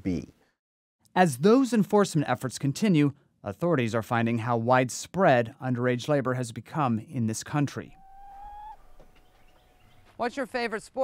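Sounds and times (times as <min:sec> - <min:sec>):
chicken calling: 0:07.9 - 0:10.1.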